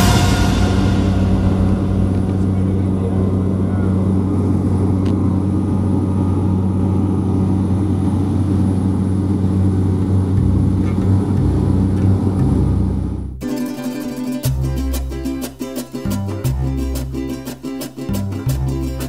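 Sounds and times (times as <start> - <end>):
propeller plane engine hum: 0.0 - 13.4.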